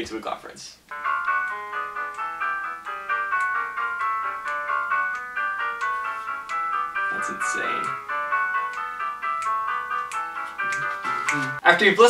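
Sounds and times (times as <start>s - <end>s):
handbell choir playing: 0.9s - 11.6s.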